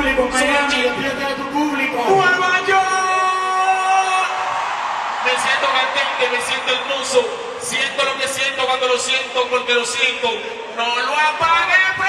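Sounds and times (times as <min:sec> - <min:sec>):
crowd noise: 0:00.0 - 0:12.0
live concert music: 0:00.0 - 0:12.0.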